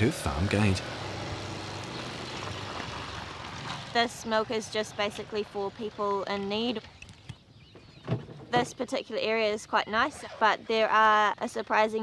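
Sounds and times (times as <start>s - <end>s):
motorbike engine running: 0.0s - 6.2s.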